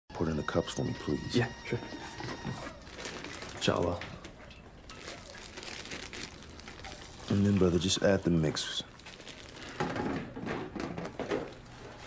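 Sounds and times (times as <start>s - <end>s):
drink packet rustling: 1.0s - 12.0s.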